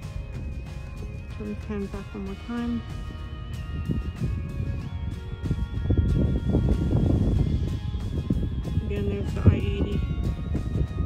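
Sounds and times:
steady high whine: 0.0 - 11.0.

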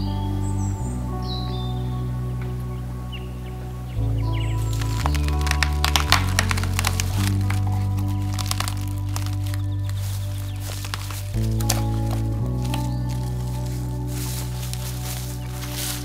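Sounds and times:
music with slow sustained chords: 0.0 - 16.0
dead branch cracking: 4.6 - 16.0.

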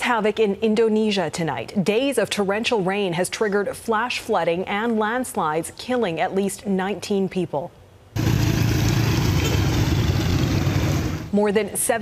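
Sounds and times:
motorcycle engine running: 8.2 - 11.3.

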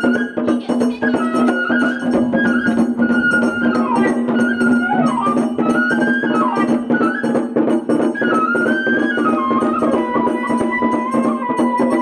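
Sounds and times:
bamboo flute melody: 0.0 - 12.0
percussion: 0.0 - 12.0.

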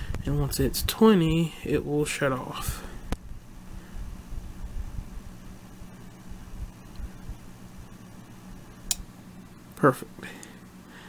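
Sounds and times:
small fan humming: 0.0 - 11.0.

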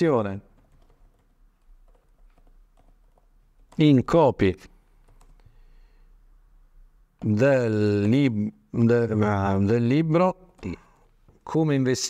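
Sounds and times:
soft computer keyboard typing: 0.3 - 4.2, 5.0 - 5.6, 7.2 - 7.5.

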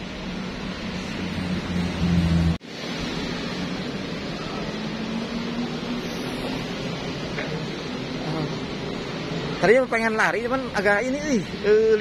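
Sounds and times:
rushing outdoor hiss: 0.1 - 12.0.

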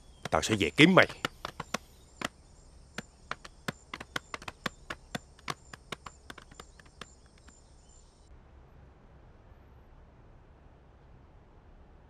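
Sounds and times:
footsteps on hard ground: 0.2 - 2.4, 3.0 - 7.6.

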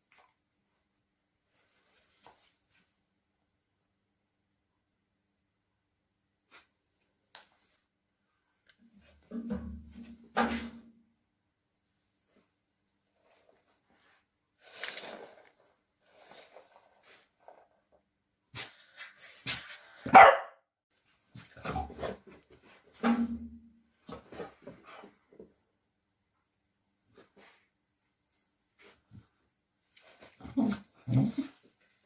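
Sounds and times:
dog barking: 20.1 - 20.6.

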